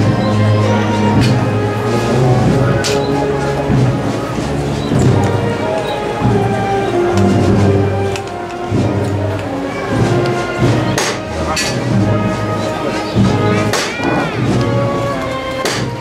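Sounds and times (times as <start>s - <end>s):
processional march with brass and drums: 0.0s - 16.0s
sharp drum strikes: 10.0s - 14.8s, 15.6s - 16.0s.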